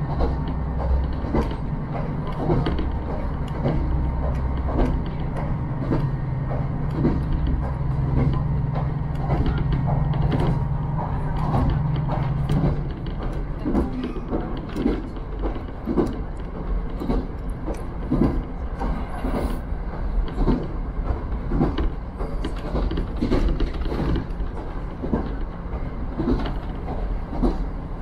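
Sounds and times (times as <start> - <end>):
diesel engine low drone: 0.0 - 28.0
carriage creaks and rattles: 0.1 - 18.6.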